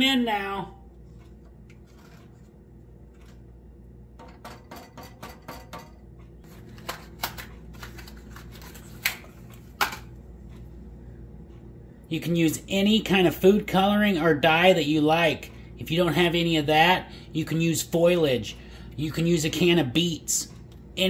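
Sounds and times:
low hum: 0.0 - 14.0
wooden spoon stirring in saucepan: 1.0 - 3.6
kitchen items being handled: 1.1 - 10.7.

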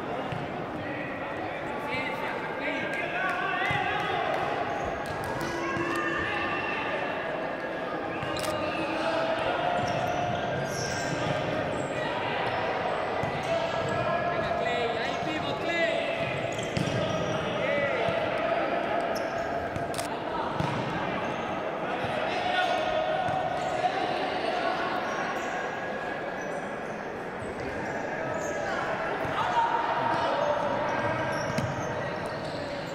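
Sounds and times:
shoes squeaking on court: 30.9 - 32.9.

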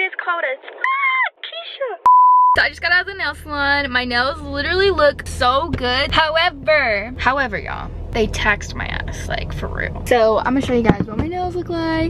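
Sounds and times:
young woman talking: 0.0 - 12.0
electronic censor beep: 2.1 - 2.6.

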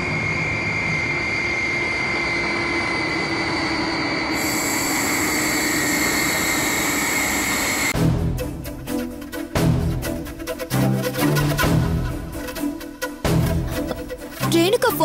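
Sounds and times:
jet engines roaring: 0.0 - 8.0.

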